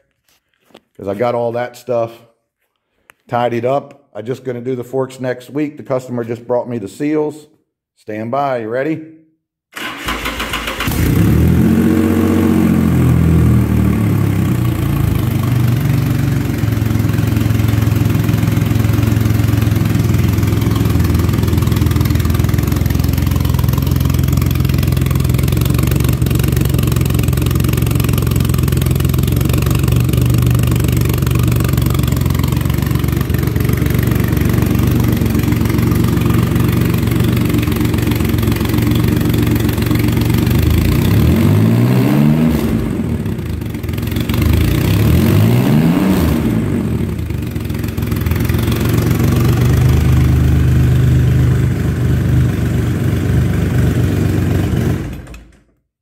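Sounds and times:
engine revving: 0:09.8 - 0:55.3
motorcycle engine idling: 0:14.0 - 0:41.2, 0:43.2 - 0:44.8, 0:47.1 - 0:54.7.

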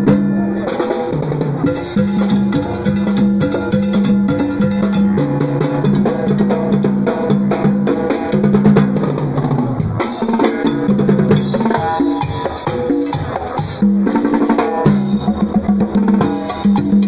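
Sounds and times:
brass band playing: 0:00.0 - 0:08.1
sousaphone bass line: 0:00.0 - 0:08.6
congas timbales and snare drum: 0:00.0 - 0:17.0.

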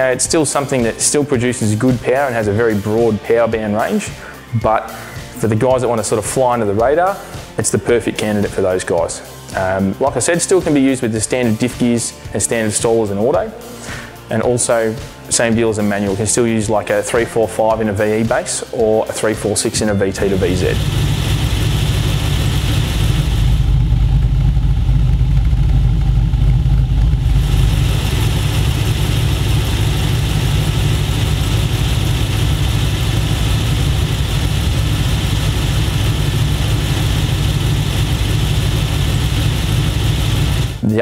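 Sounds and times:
car engine idling: 0:20.2 - 0:40.8.

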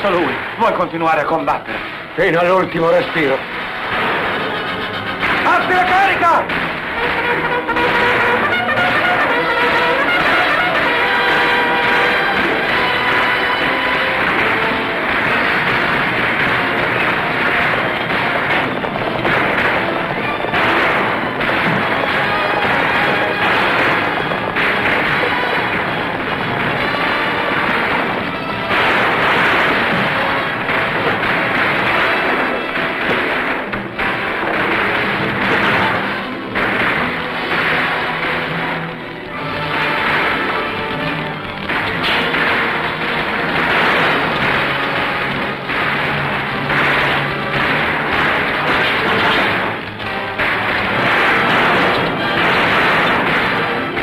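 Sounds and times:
battle din: 0:00.0 - 0:54.0
gunfire: 0:00.0 - 0:54.0
orchestral film score: 0:00.0 - 0:54.0.

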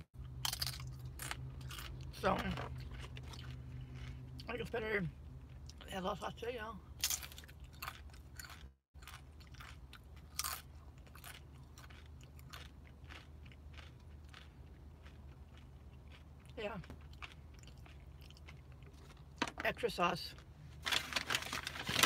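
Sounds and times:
steady low hum: 0:00.0 - 0:21.9
chewing crunchy chips: 0:00.2 - 0:06.0, 0:06.9 - 0:19.4.

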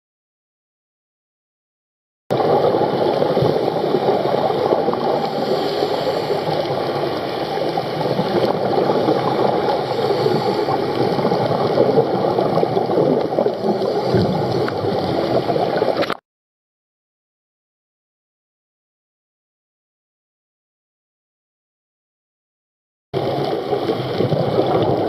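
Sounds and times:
underwater bubbling water rush: 0:02.3 - 0:16.2, 0:23.2 - 0:25.0.

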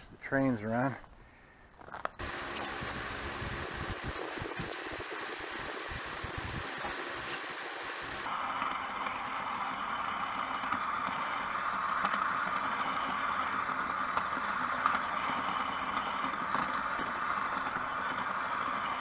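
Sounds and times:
wheels clicking on rails: 0:01.9 - 0:19.0
model train motor humming: 0:02.2 - 0:19.0.

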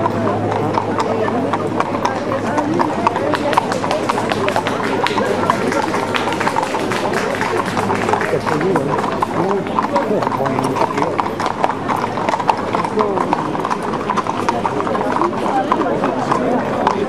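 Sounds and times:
crowd chattering: 0:00.0 - 0:17.0
hoofbeats on paved street: 0:00.0 - 0:17.0.

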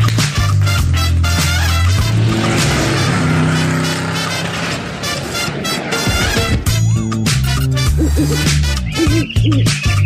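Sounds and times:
music: 0:00.0 - 0:10.0
rushing engine-like noise: 0:01.1 - 0:07.6.

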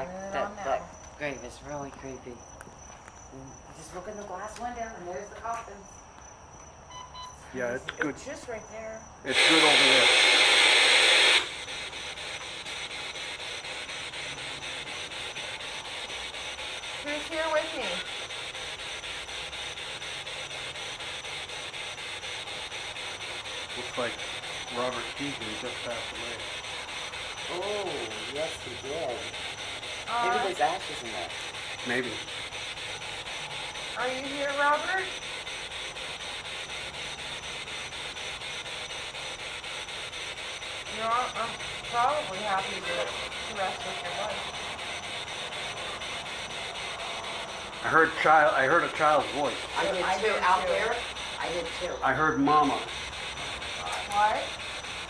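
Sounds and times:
radio static hiss: 0:09.2 - 0:55.0
broken voice fragments: 0:09.3 - 0:11.6.

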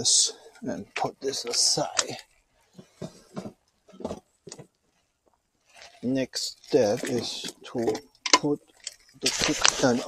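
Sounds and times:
faint handling knocks and shuffles: 0:00.0 - 0:10.0.

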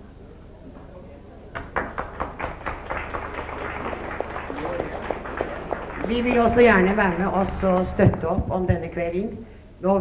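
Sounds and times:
audience clapping: 0:01.6 - 0:08.0.

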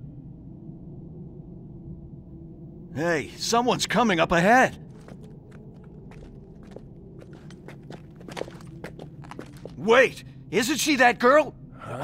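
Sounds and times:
footsteps on dirt path: 0:04.9 - 0:09.9.

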